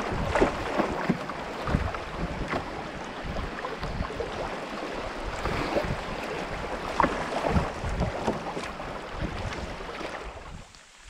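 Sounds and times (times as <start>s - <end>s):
river water rushing and splashing: 0.0s - 11.0s
small water splashes: 0.0s - 11.0s
wind rumbling on microphone: 0.0s - 11.0s.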